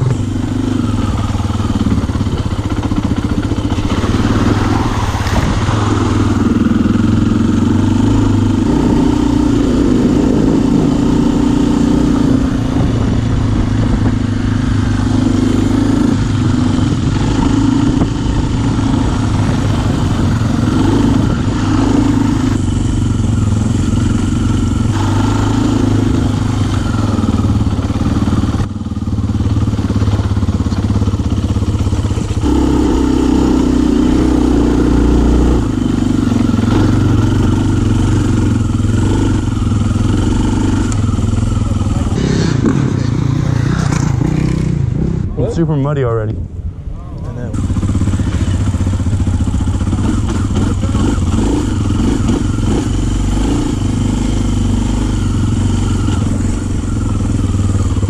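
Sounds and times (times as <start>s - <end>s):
dirt bike engine revving: 0.0s - 46.3s, 47.5s - 58.0s.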